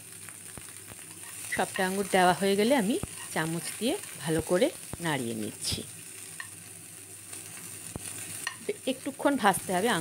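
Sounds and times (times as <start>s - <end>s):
grapes sizzling in oil: 0.0s - 10.0s.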